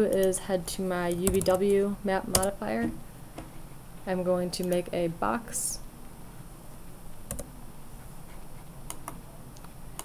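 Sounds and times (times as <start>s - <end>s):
faint steady hum: 0.0s - 10.0s
computer mouse clicks: 7.3s - 7.5s, 8.8s - 10.0s.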